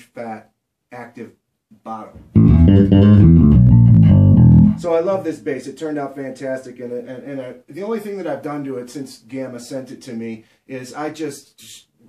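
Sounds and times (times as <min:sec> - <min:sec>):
bass guitar run of notes: 0:02.2 - 0:05.2.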